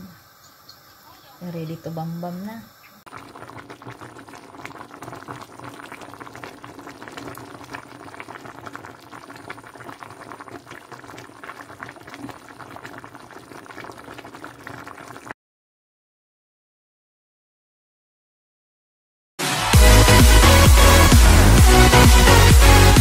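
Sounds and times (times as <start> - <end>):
soup bubbling in pot: 2.6 - 15.4.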